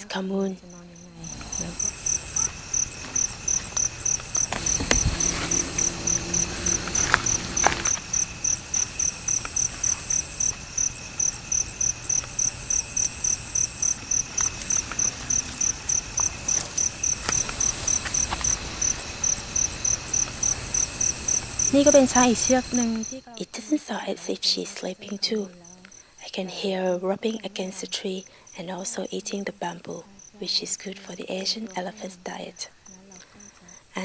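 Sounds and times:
cricket chirping: 0.0 - 34.0
insects trilling: 0.0 - 34.0
snaps and rustles in undergrowth: 14.2 - 19.3.

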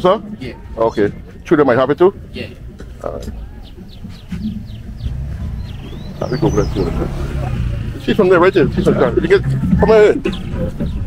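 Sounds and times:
people's voices: 0.0 - 11.0
car engine passing: 3.4 - 11.0.

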